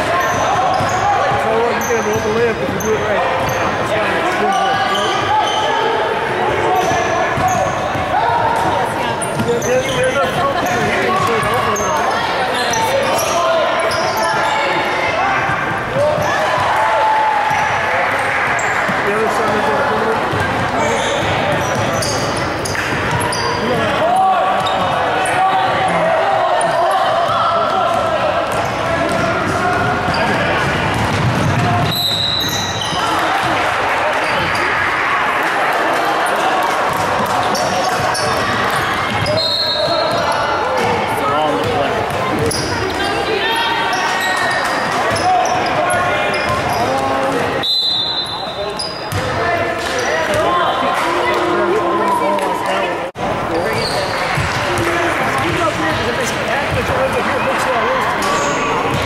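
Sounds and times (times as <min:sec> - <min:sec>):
voices echoing in a hall: 0:00.0 - 0:59.0
referee whistle blasts: 0:31.9 - 0:33.0, 0:39.3 - 0:40.0, 0:47.6 - 0:49.0.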